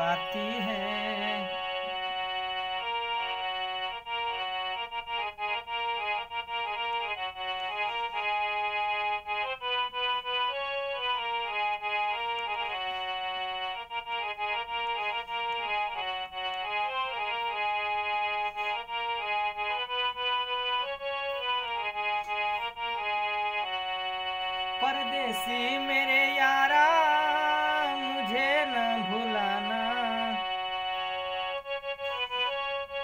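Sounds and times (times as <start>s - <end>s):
reedy harmonium melody: 0.0s - 33.0s.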